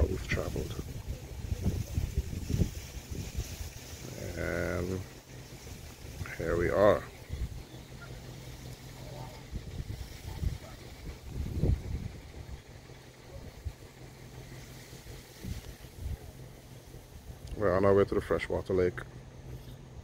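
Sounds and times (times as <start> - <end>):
wind buffeting microphone: 0.0 - 18.3
faint voices: 0.0 - 20.0.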